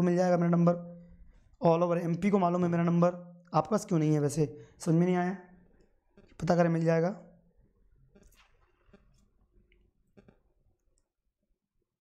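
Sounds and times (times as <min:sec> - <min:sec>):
man speaking: 0:00.0 - 0:01.0, 0:01.6 - 0:05.6, 0:06.3 - 0:07.4.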